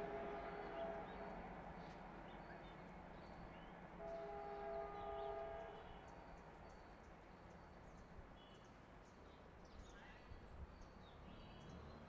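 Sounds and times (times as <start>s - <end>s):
distant locomotive horn: 0.0s - 1.4s, 4.0s - 5.9s.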